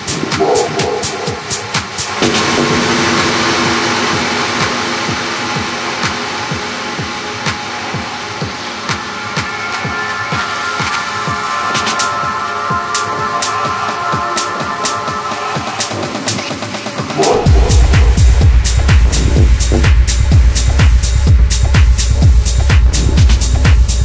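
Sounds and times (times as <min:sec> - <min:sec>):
steady kick drum: 0:00.0 - 0:02.9, 0:17.0 - 0:24.0
hissing synth noise: 0:00.0 - 0:13.6, 0:16.4 - 0:24.0
high sustained synth tone: 0:00.0 - 0:13.7
crisp hi-hats: 0:00.0 - 0:24.0.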